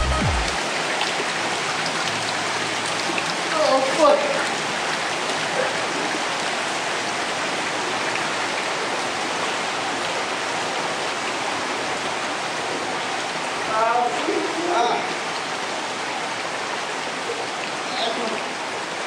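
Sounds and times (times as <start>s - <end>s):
creek flowing over rocks: 0.0s - 19.0s.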